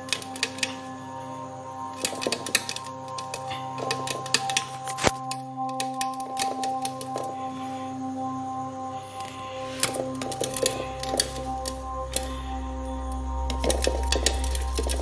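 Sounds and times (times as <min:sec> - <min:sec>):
background music with held tones: 0:00.0 - 0:15.0.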